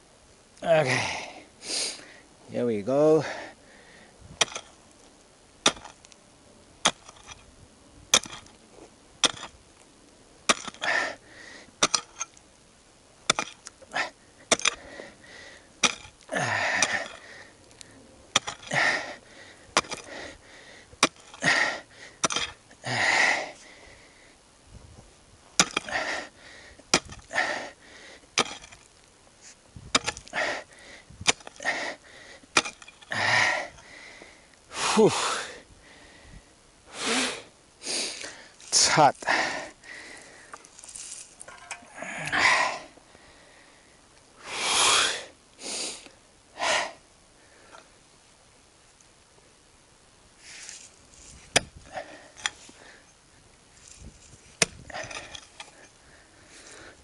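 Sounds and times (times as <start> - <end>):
dirt scraping and crumbling: 4.2 - 24.0, 24.7 - 35.7, 38.0 - 43.2, 50.4 - 57.0
pickaxe striking hard soil: 4.4 - 4.8, 5.6 - 6.0, 6.8 - 7.4, 8.1 - 8.6, 9.2 - 9.6, 10.5 - 11.2, 11.8 - 12.3, 13.3 - 13.7, 14.5 - 14.9, 15.8 - 17.2, 18.3 - 19.1, 19.8 - 20.2, 21.0 - 22.6, 25.6 - 26.2, 26.9 - 27.6, 28.4 - 28.9, 29.8 - 31.9, 32.5 - 33.3, 51.4 - 52.6, 54.1 - 55.8.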